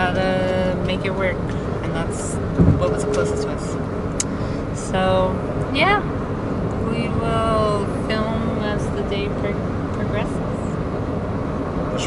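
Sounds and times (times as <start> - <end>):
car cabin road and engine noise: 0.0 - 12.0.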